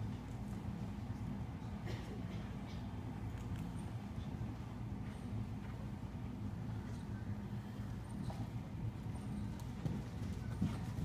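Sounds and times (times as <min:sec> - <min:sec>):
horse hoofbeats on dirt: 0:08.2 - 0:11.0.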